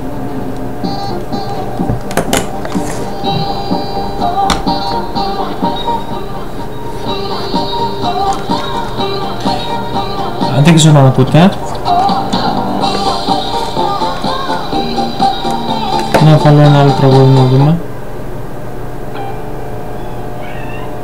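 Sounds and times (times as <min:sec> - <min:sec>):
music through desktop speakers: 0:00.7 - 0:17.8.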